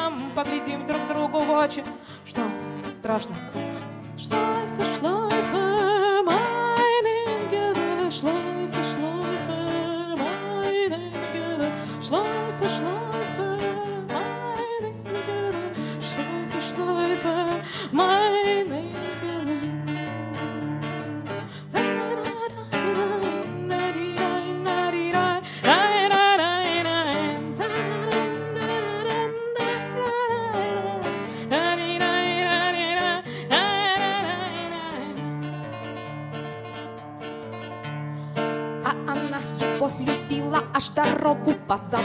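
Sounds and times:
woman singing with vibrato: 0.0 - 36.2, 38.8 - 42.0
acoustic guitar: 0.0 - 42.0.

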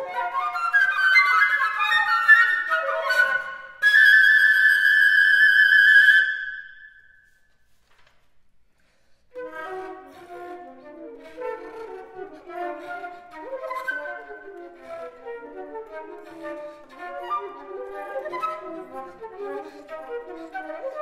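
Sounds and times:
flutes playing: 0.0 - 7.4, 9.3 - 21.0.

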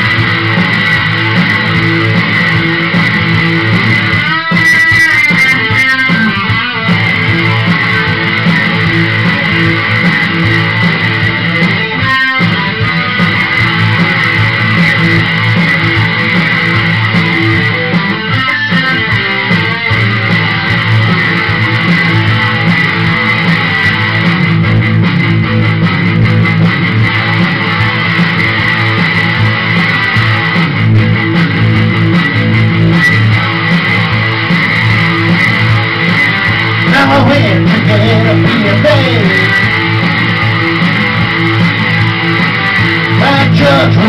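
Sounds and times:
guitar playing: 0.0 - 44.0.

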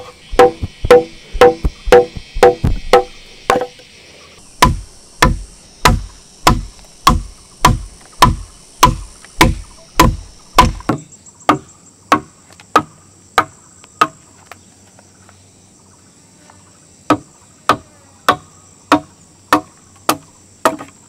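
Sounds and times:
insects buzzing faintly: 0.0 - 21.0
mallet striking wood chisel: 0.4 - 3.7, 4.6 - 14.2.

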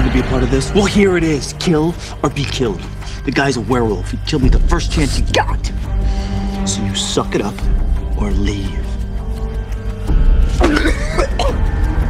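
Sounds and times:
low ominous music drone: 0.0 - 12.0
man grunting and coughing: 10.6 - 11.6.

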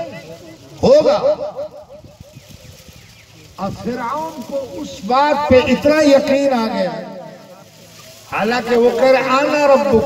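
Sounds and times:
man speaking over public address: 3.6 - 7.7, 8.3 - 10.0.

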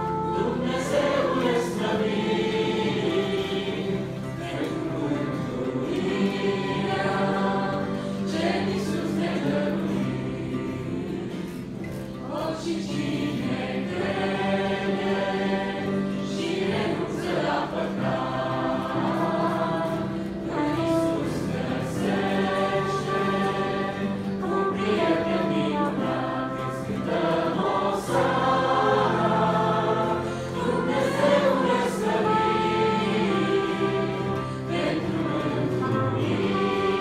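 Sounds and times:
congregation and choir singing: 0.0 - 37.0.

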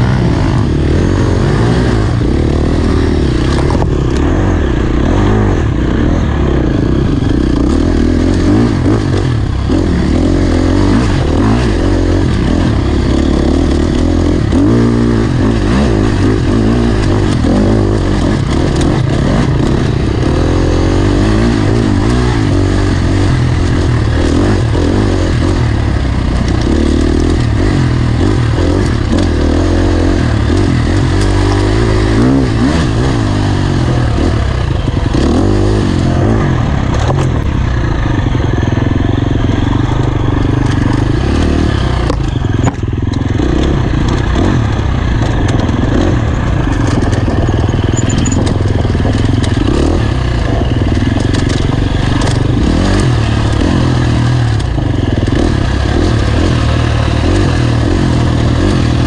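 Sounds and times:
dirt bike engine revving: 0.0 - 59.0.

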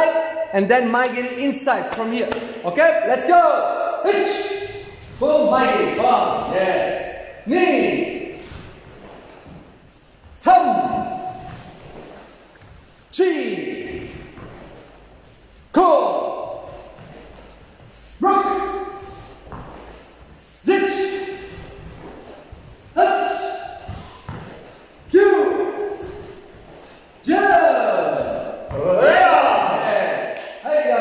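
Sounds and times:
man shouting a count: 0.0 - 8.4, 10.4 - 11.4, 13.1 - 14.4, 15.7 - 17.0, 18.1 - 19.4, 20.6 - 21.6, 22.9 - 23.9, 25.0 - 26.3, 27.2 - 31.0.

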